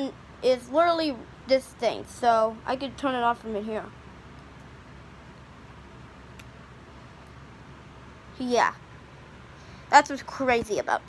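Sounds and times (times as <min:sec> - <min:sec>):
background hum and hiss: 0:00.0 - 0:11.0.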